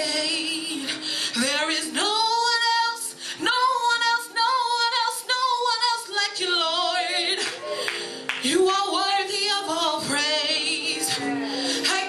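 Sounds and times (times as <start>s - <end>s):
woman singing gospel: 0.0s - 12.0s
breaths: 0.9s - 1.4s, 3.1s - 3.4s, 7.5s - 8.3s, 11.4s - 11.9s.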